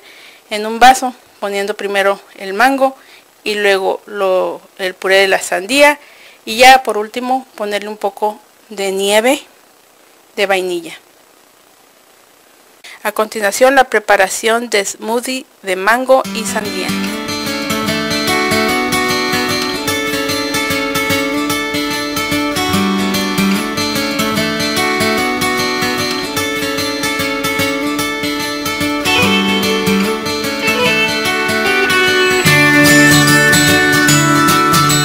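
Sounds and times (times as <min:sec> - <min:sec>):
strummed guitar music: 0:16.2 - 0:35.0.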